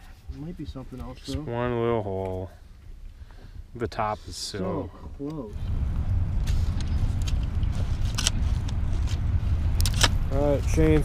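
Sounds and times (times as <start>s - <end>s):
low engine rumble: 0.0s - 11.0s.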